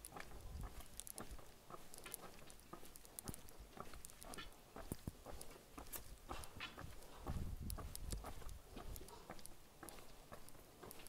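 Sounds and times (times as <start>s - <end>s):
footsteps clicking and tapping: 0.0s - 11.0s.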